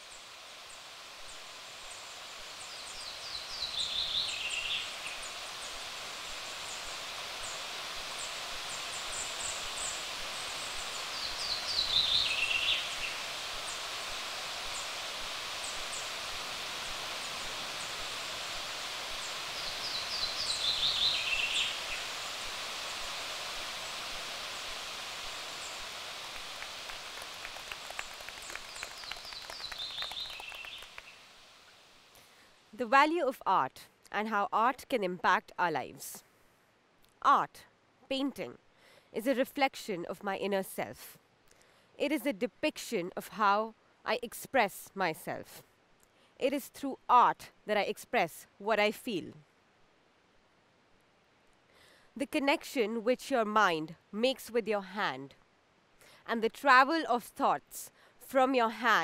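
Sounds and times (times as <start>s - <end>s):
steady hiss: 0.0s - 59.0s
hand claps: 26.3s - 31.1s.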